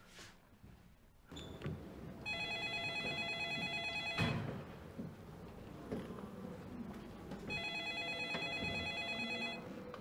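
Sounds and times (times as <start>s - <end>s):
telephone ringing: 2.2s - 4.4s, 7.5s - 9.7s.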